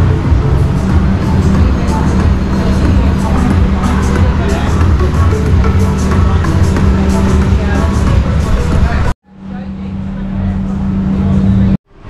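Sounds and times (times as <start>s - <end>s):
music playing in a bar: 0.0s - 9.2s
low traffic hum: 0.0s - 12.0s.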